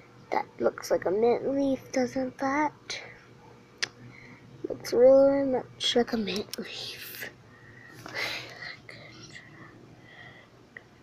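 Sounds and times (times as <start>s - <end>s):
girl whispering: 5.9s - 7.4s, 8.1s - 9.6s.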